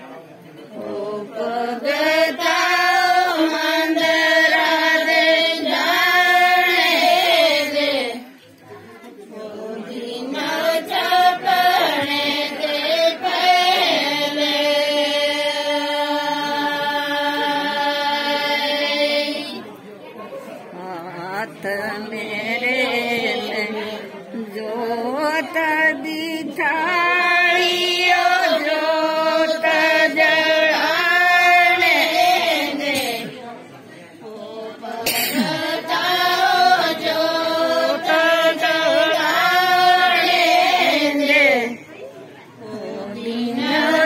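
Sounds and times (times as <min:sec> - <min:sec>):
soft overlapping chatter: 0:00.0 - 0:44.0
women singing: 0:00.7 - 0:08.5, 0:09.2 - 0:19.6, 0:20.8 - 0:33.4, 0:34.2 - 0:41.9, 0:42.5 - 0:44.0.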